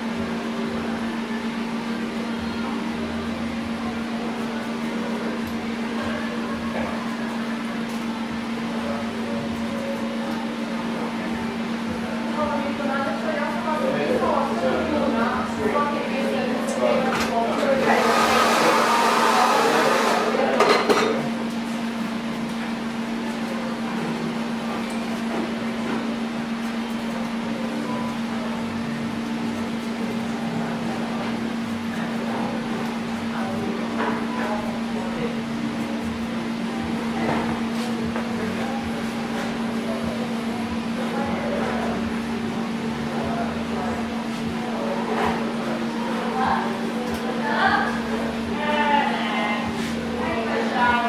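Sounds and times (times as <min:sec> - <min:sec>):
fan blowing air: 0:00.0 - 0:51.0
hair dryer running: 0:17.3 - 0:20.6
electric motor humming: 0:17.7 - 0:20.4.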